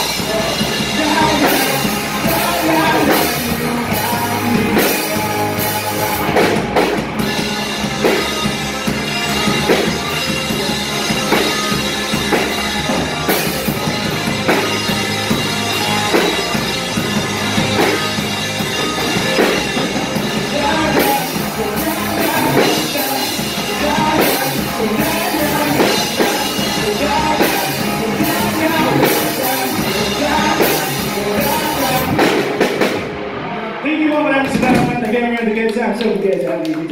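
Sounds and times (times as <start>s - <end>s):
man singing: 0.0s - 7.6s, 20.2s - 32.7s
bass guitar: 0.0s - 36.9s
drum kit: 0.0s - 36.9s
electric guitars: 0.0s - 36.9s
live rock band playing: 0.0s - 36.9s
loud drum hit: 34.4s - 35.2s.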